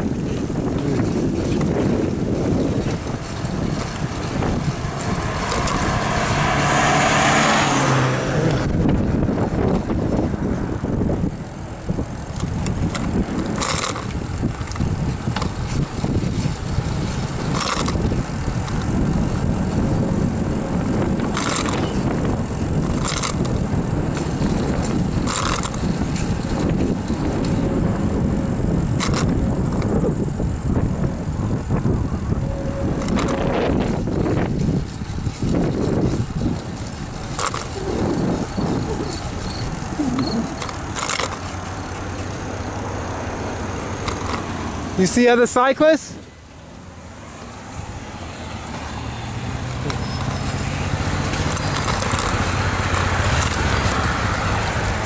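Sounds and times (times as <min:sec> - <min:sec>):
bicycle road noise on asphalt: 0:00.0 - 0:55.0
wind rumble on microphone: 0:00.0 - 0:55.0
car passing: 0:00.4 - 0:14.4, 0:30.7 - 0:55.0.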